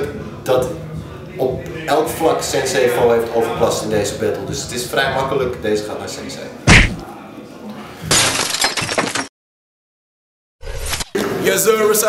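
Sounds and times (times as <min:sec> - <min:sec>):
glass shattering: 0:08.1 - 0:09.3.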